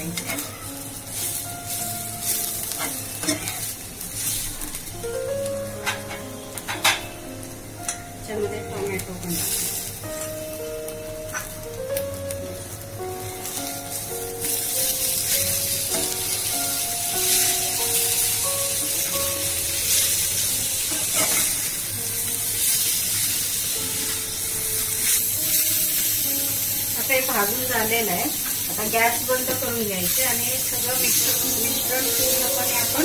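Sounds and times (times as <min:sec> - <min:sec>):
background music melody: 0:00.0 - 0:33.0
food sizzling in hot oil: 0:00.0 - 0:33.0
metal spatula in pan: 0:01.2 - 0:04.8, 0:19.8 - 0:21.8.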